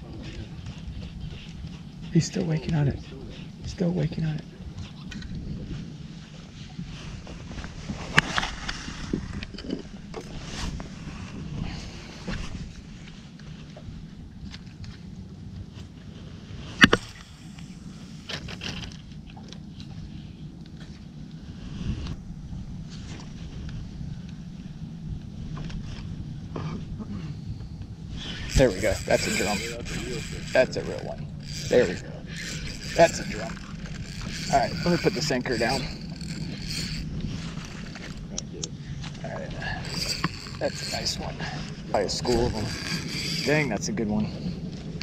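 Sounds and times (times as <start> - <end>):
wind noise on microphone: 0.0 - 45.0.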